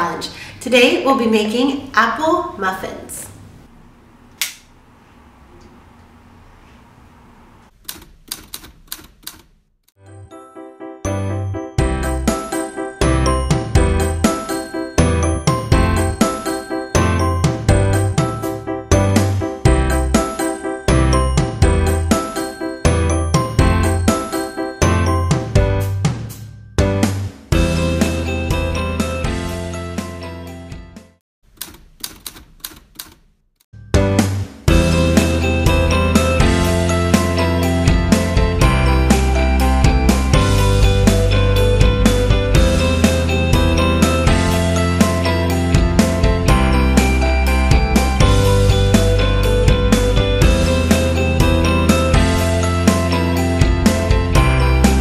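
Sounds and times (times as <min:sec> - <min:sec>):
oven switch and dial clicks: 0:04.4 - 0:04.7, 0:31.6 - 0:33.3
typewriter key clicks: 0:07.8 - 0:09.5, 0:31.5 - 0:33.3
background music: 0:10.0 - 0:31.2, 0:33.8 - 0:55.0.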